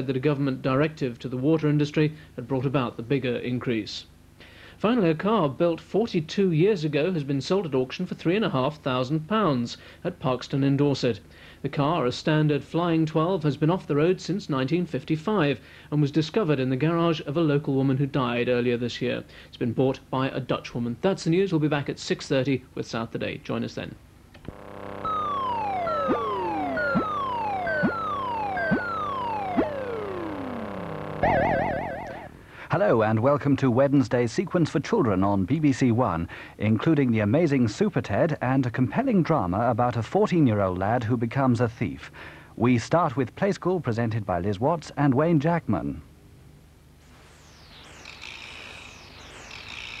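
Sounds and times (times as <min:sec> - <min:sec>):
low electronic drone: 0:24.4 - 0:32.5, 0:47.1 - 0:50.0
steady high tone: 0:24.4 - 0:32.6, 0:47.1 - 0:50.0
high whistle falling in pitch: 0:24.5 - 0:32.4, 0:47.2 - 0:50.0
falling whistling sweeps: 0:47.2 - 0:50.0.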